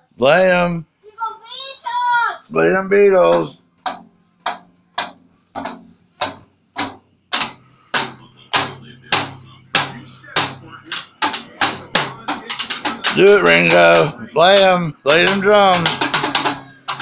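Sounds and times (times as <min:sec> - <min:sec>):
toy drum kit hits: 0:03.3 - 0:17.0.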